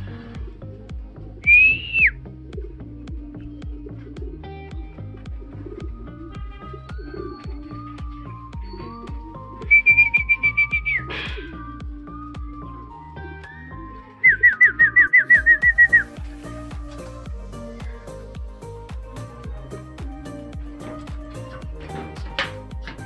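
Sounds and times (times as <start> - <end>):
music with steady beat: 0.0 - 13.6, 14.2 - 23.0
person whistling loudly: 1.5 - 2.2, 8.8 - 11.1.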